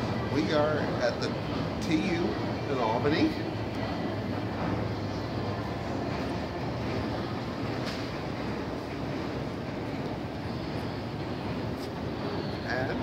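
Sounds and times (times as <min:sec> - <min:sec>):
low rumble of arena background: 0:00.0 - 0:13.0.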